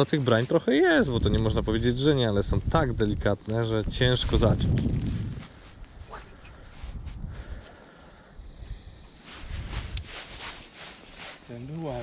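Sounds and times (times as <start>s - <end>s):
outdoor background noise: 0.0s - 12.0s
man speaking: 11.5s - 12.0s.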